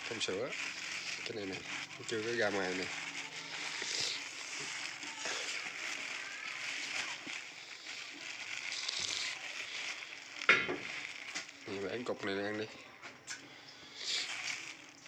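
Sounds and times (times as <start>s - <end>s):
honeycomb sticky crackles: 0.0s - 15.0s
plastic bag rustling: 0.0s - 15.0s.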